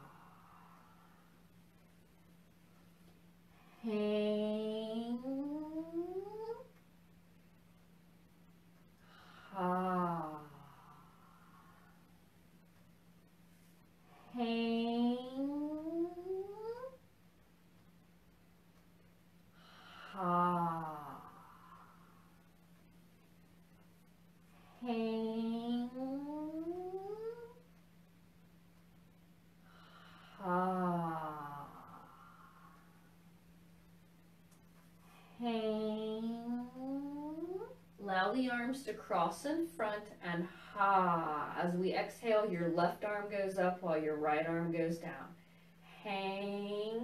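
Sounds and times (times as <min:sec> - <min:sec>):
woman intoning a drawn-out syllable: 0:03.8 - 0:06.7, 0:14.4 - 0:16.9, 0:24.8 - 0:27.6, 0:35.4 - 0:45.2.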